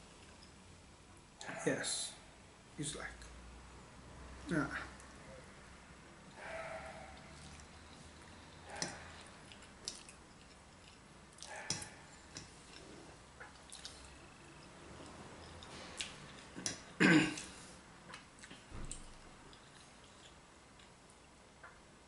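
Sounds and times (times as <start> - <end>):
slurping and chewing: 7.1 - 21.0.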